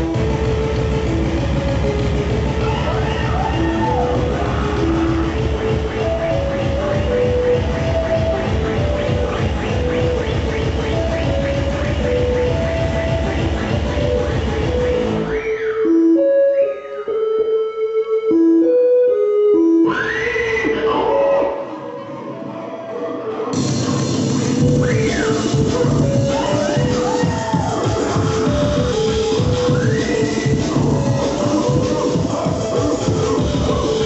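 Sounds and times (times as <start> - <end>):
dense electronic beat: 0.0 - 15.4, 23.6 - 34.0
bleeping square-wave melody: 0.0 - 34.0.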